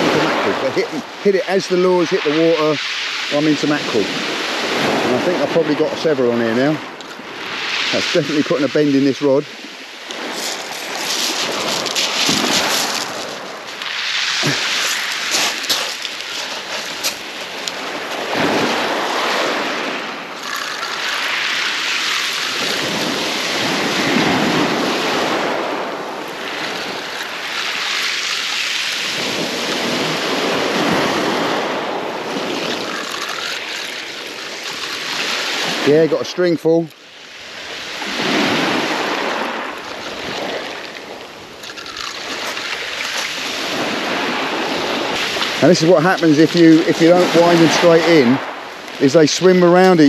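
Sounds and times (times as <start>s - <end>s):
waves breaking on shingle: 6.8s - 50.0s
pebbles crackling: 10.2s - 18.0s, 39.9s - 43.4s.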